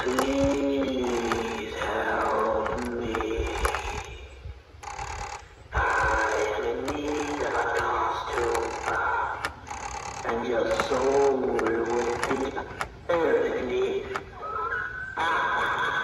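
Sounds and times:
gear motor whirring and clicking: 0.0 - 4.2, 4.8 - 13.0
deep recorded voice: 0.0 - 4.6, 5.7 - 9.6, 10.2 - 16.0
wind rumbling on microphone: 0.0 - 6.8.

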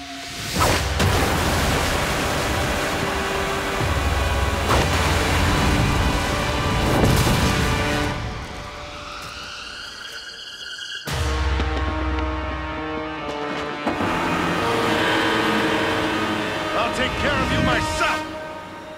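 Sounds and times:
dramatic orchestral music: 0.0 - 18.9
rush of surging water: 1.0 - 8.1.

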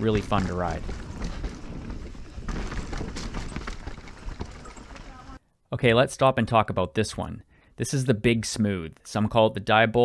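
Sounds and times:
bike knocks and rattles: 0.0 - 5.4
bike tyres rolling on dirt: 0.0 - 5.4.

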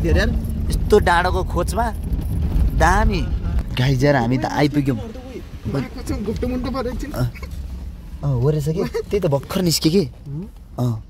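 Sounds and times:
car rumble from inside cabin: 0.0 - 11.0.

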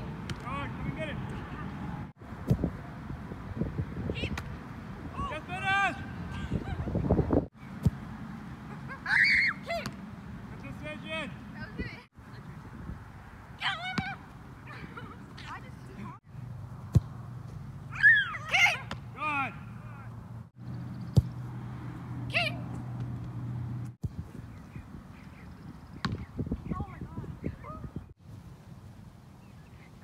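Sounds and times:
ball kicked thumps: 2.4 - 2.7, 16.8 - 17.6, 21.1 - 21.4, 26.0 - 26.3.

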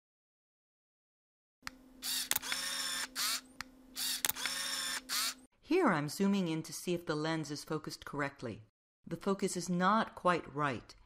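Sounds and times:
lens autofocus clicks: 1.7 - 3.4, 4.0 - 5.4
lens autofocus motor whirring: 2.0 - 5.5.

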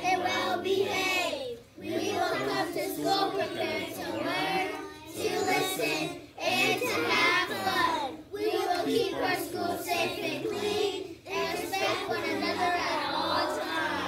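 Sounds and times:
children reciting in unison: 0.0 - 14.0.

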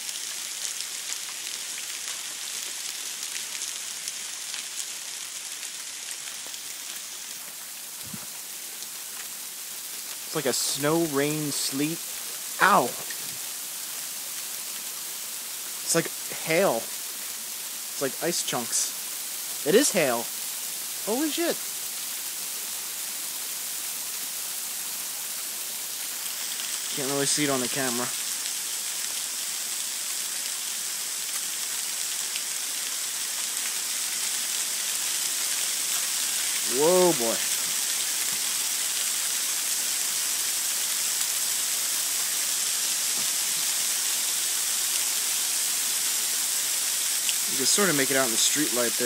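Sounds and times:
hail and freezing rain hissing: 0.0 - 49.0.

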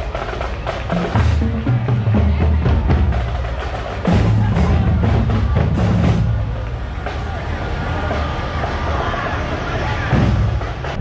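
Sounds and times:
drum beat: 0.0 - 9.1, 9.7 - 11.0
people's voices: 0.0 - 11.0.

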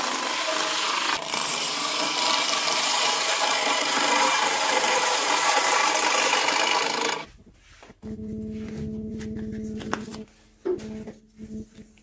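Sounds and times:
gouge scraping spinning wood: 0.0 - 7.3
wood lathe spinning: 0.0 - 7.3.

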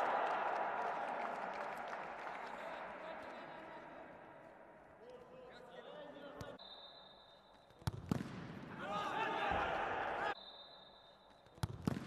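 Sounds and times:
voices shouting in a hall: 0.0 - 4.8, 8.7 - 10.4
faint steady high tone: 6.6 - 7.8.

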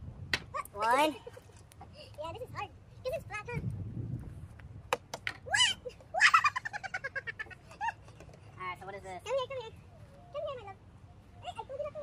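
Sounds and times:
child squealing: 5.4 - 6.6
child giggling: 5.6 - 8.2.

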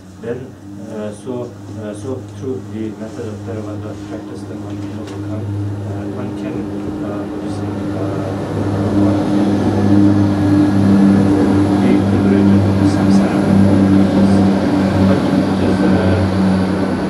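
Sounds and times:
low mechanical drone: 0.0 - 17.0.

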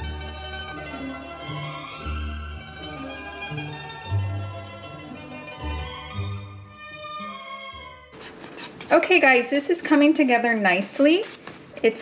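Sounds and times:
background music: 0.0 - 8.7
woman speaking: 8.9 - 12.0.

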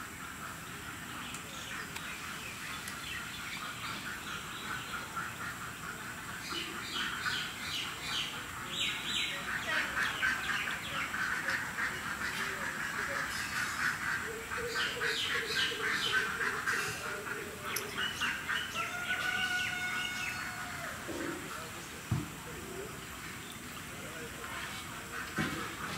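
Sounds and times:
birds calling: 0.0 - 25.9.

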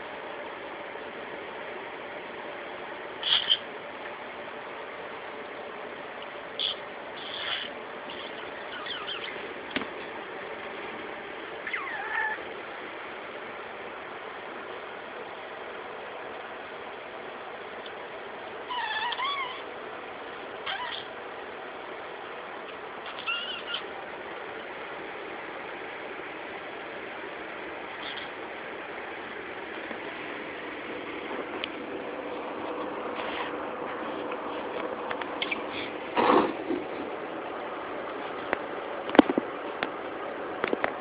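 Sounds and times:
budgie chirping: 3.2 - 3.7, 6.6 - 9.4, 11.6 - 12.4, 22.7 - 23.9, 28.0 - 28.3, 35.4 - 36.5.

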